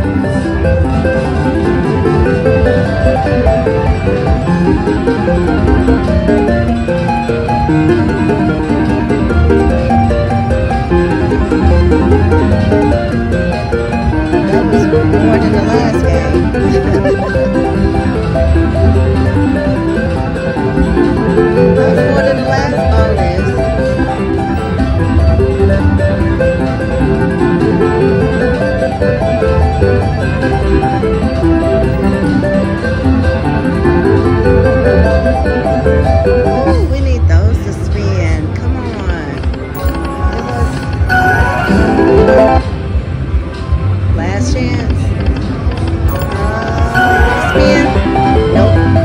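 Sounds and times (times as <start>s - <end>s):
slot machine bonus music: 0.0s - 36.9s, 39.4s - 43.0s, 45.8s - 49.0s.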